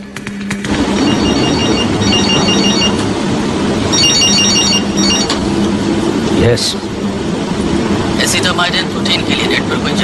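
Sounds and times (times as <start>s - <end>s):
steady rushing noise: 0.0s - 10.0s
electronic telephone ringing: 0.9s - 3.0s, 3.9s - 5.4s.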